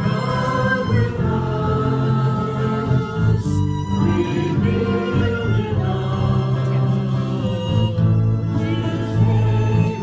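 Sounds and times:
voices singing together: 0:00.0 - 0:10.0
worship band playing: 0:00.0 - 0:10.0.

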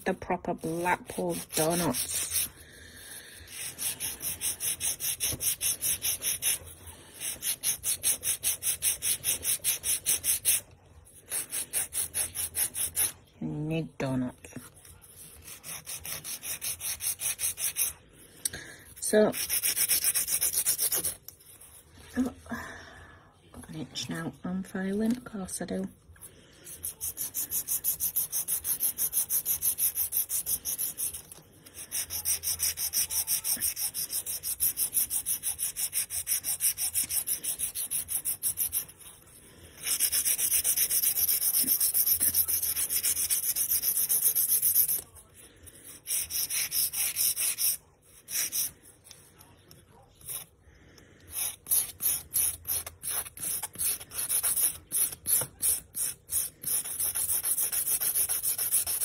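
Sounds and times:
nail file rasping: 0:00.6 - 0:02.6, 0:03.4 - 0:10.6, 0:11.2 - 0:13.2, 0:15.1 - 0:17.9, 0:19.1 - 0:21.3, 0:26.7 - 0:39.0, 0:39.8 - 0:45.1, 0:45.8 - 0:49.4, 0:50.2 - 0:50.5, 0:51.2 - 0:59.0.

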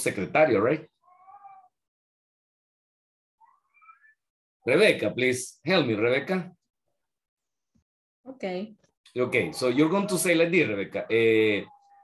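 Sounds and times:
cat meowing: 0:01.0 - 0:01.8.

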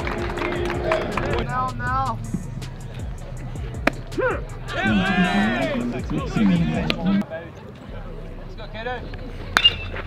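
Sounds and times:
spectators calling out: 0:04.1 - 0:07.2
metal bat hitting ball: 0:09.6 - 0:10.0.

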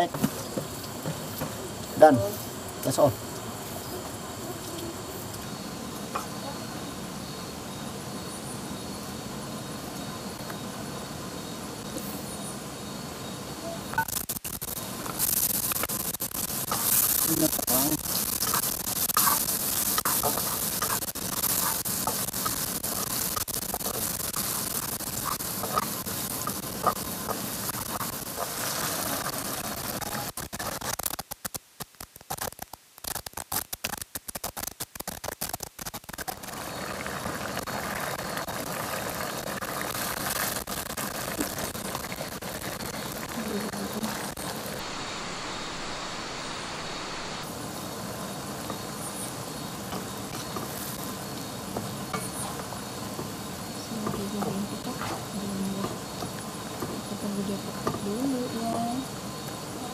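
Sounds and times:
food sizzling in a wok: 0:12.8 - 0:31.6, 0:32.3 - 0:59.9.

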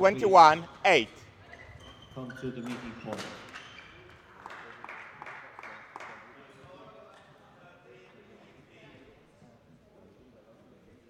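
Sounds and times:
faint voices: 0:00.0 - 0:01.2.

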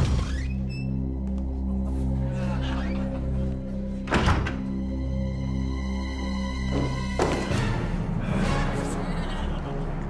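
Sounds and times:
tense soundtrack music: 0:00.0 - 0:10.0
heavy wooden door shutting: 0:04.0 - 0:04.8.

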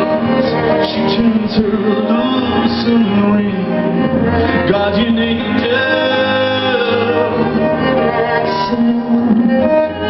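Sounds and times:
bowed strings: 0:00.0 - 0:10.0.

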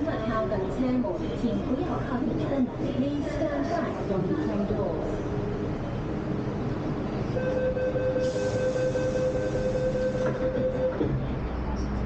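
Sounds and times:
train low rumble: 0:00.0 - 0:12.0
train electric whine: 0:07.3 - 0:11.2.

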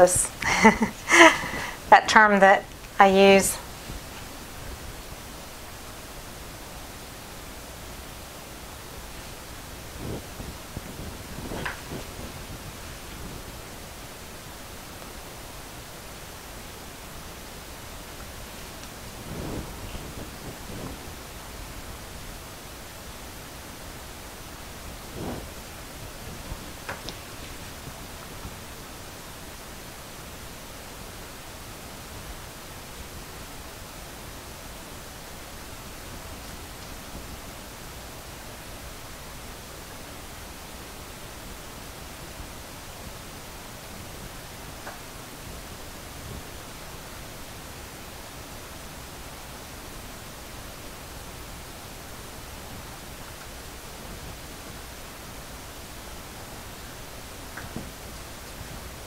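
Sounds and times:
steady hiss: 0:00.0 - 0:59.0.

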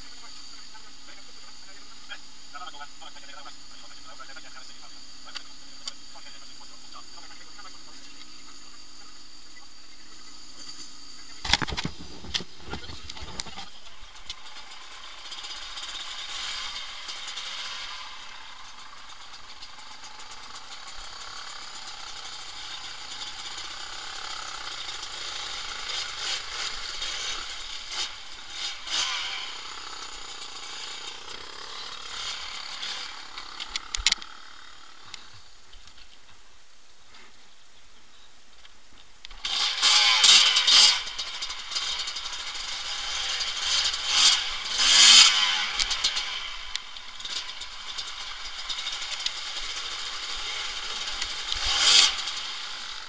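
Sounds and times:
motorcycle engine running: 0:00.0 - 0:36.7, 0:38.9 - 0:53.0.

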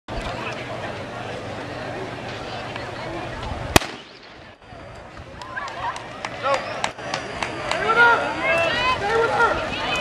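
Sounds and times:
spectators shouting: 0:05.4 - 0:10.0.

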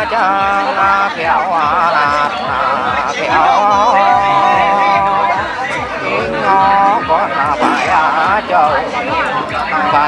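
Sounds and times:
crowd chatter: 0:00.0 - 0:10.0
person singing folk song: 0:00.0 - 0:10.0.

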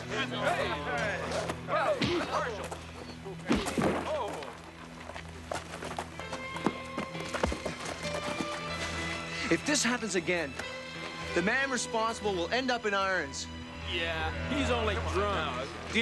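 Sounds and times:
background music: 0:00.0 - 0:16.0
scuffling: 0:01.0 - 0:09.5.

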